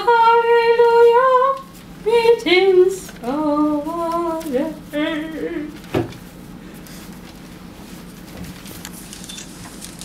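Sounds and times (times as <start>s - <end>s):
woman singing unaccompanied: 0.0s - 5.9s.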